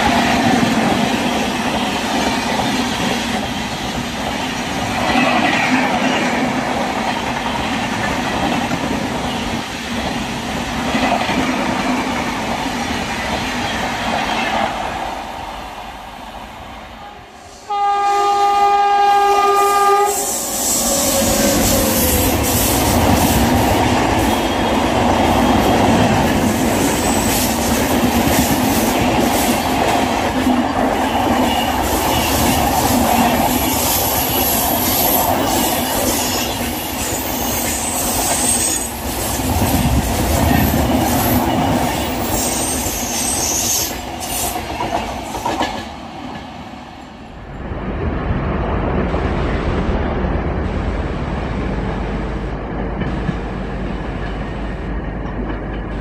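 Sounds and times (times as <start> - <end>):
train wheels rolling on rail: 0.0 - 56.0
train horn: 17.0 - 20.8.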